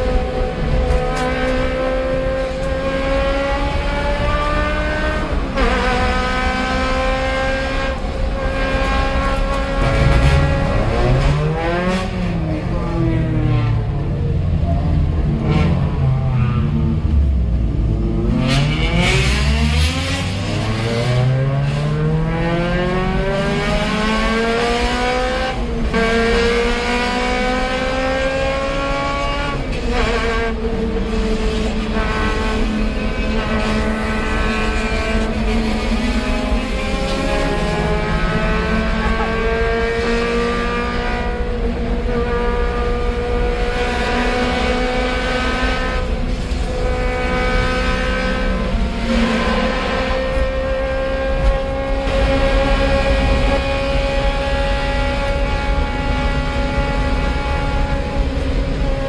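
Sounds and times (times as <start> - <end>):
car engine accelerating: 0.0 - 59.0.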